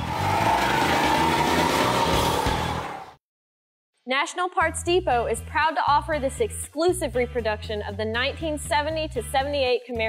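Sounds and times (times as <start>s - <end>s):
car engine revving hard: 0.0s - 3.2s.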